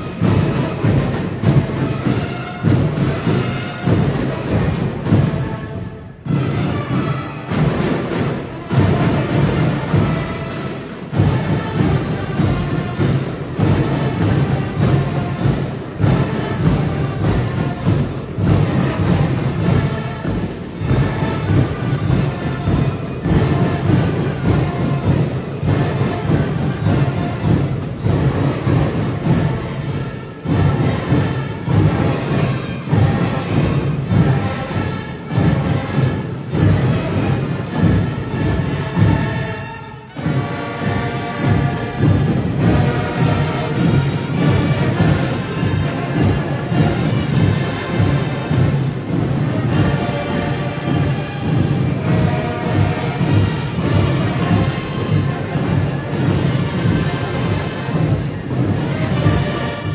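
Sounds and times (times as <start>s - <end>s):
marching band playing: 0.0s - 59.9s
snare and bass drums: 0.0s - 59.9s.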